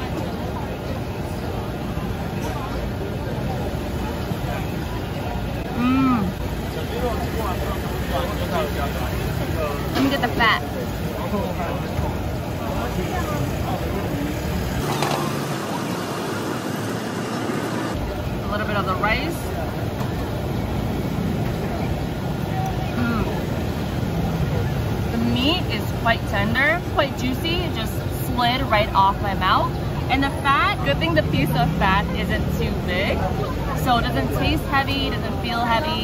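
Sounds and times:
passers-by talking: 0.0 - 36.0
traffic rumble: 0.0 - 36.0.

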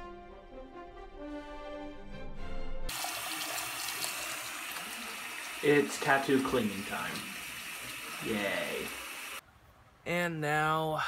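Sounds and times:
music: 0.0 - 2.9.

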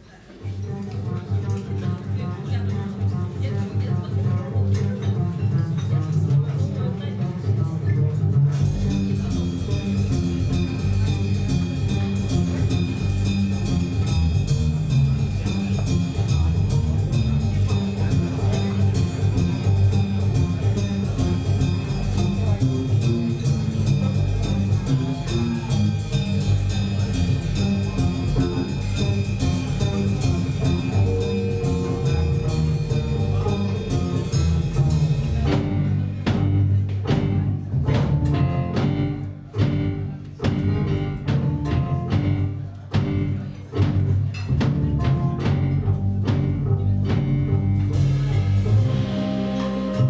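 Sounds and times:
live jazz band playing: 0.4 - 50.0.

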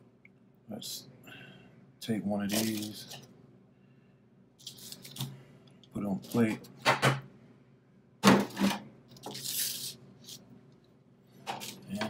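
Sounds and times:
foil crinkling rustle: 2.5 - 3.2.

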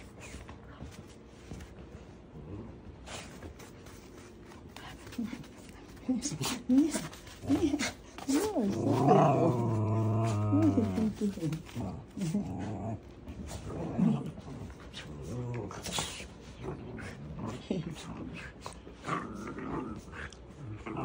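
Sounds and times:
dogs growling and scuffling: 0.0 - 21.0.

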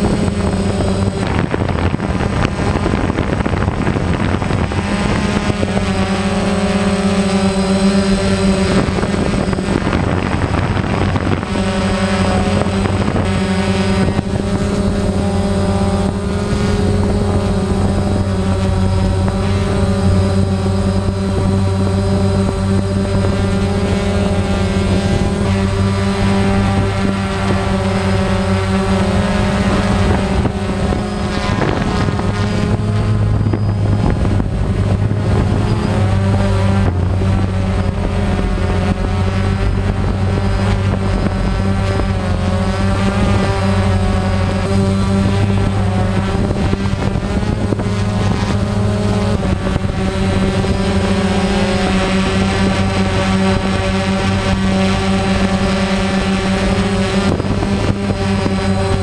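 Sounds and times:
drone propellers buzzing: 0.0 - 59.0.

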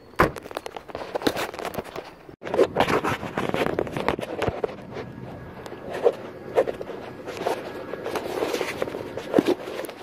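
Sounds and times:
phone rustling against clothing: 0.4 - 10.0.

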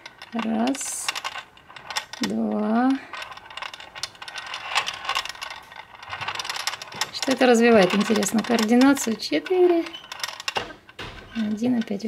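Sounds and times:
steel balls clicking against plastic: 0.0 - 12.0.

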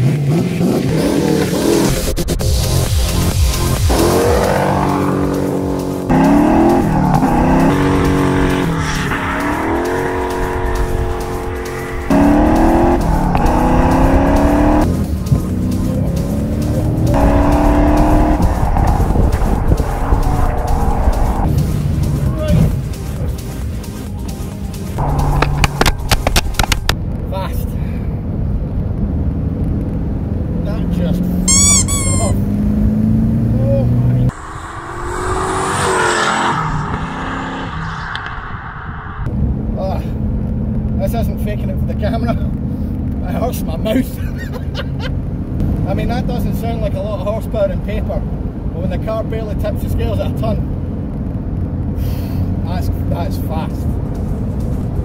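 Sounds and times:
car engine accelerating hard: 0.0 - 22.8, 25.0 - 27.0, 29.2 - 40.8.

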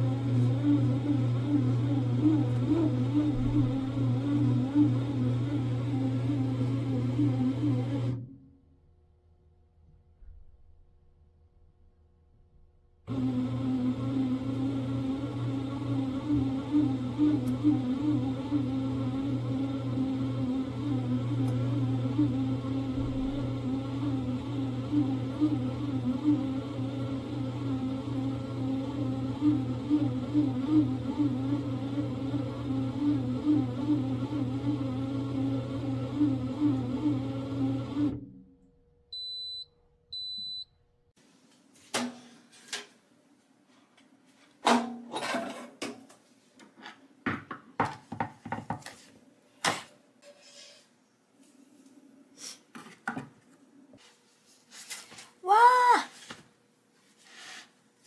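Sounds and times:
bread machine motor humming: 0.0 - 8.2, 13.1 - 38.3.

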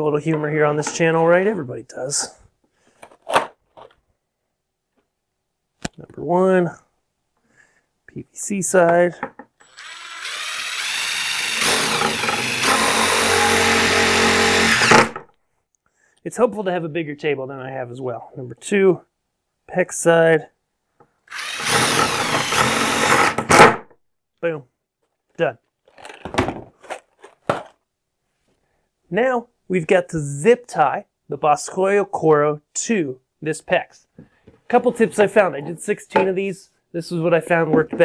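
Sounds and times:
impact driver driving screw: 9.6 - 15.2, 21.3 - 23.8.

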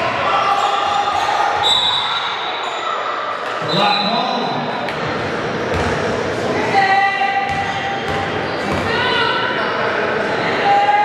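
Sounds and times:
basketball bouncing on court: 5.7 - 6.0, 7.4 - 9.0.

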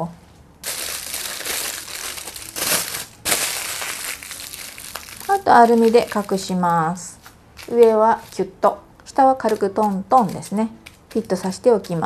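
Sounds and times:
aluminium foil crinkling: 0.6 - 12.0.

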